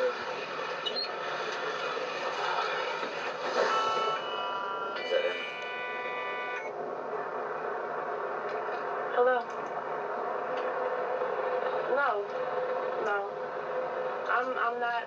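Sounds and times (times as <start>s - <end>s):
muffled television audio: 0.0s - 15.0s
sustained electronic tones: 3.3s - 6.8s.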